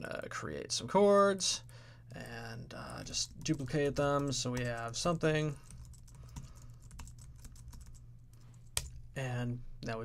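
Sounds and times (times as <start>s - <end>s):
faint low hum: 0.0s - 10.0s
keyboard keys clicking: 5.6s - 8.0s.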